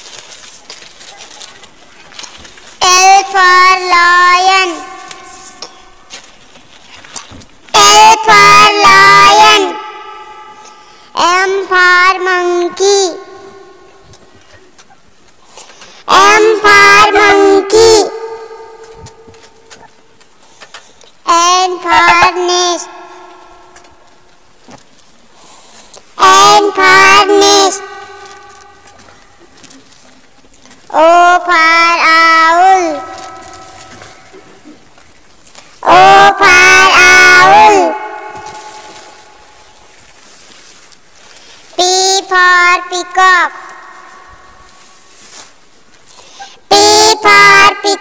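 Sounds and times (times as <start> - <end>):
child singing: 7.8 - 9.8, 11.2 - 13.6, 16.1 - 18.4, 26.2 - 27.8, 35.8 - 38.0.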